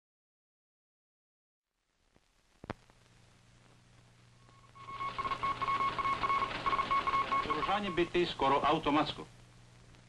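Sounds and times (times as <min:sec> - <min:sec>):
static hiss: 0:01.7 - 0:10.0
radio signal tone beeping: 0:04.4 - 0:08.2.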